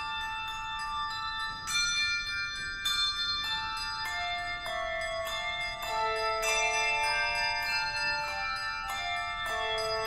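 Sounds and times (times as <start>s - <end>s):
handbell choir playing chords: 0.0s - 10.0s.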